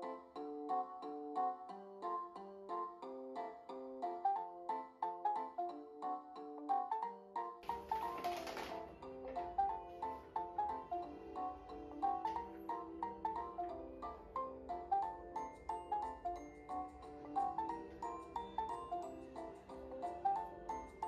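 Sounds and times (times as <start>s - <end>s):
bell-like mallet melody: 9.0s - 21.0s.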